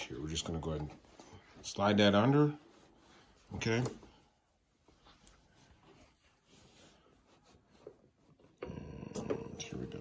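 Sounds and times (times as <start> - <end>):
fabric rustling: 0.0 - 8.6.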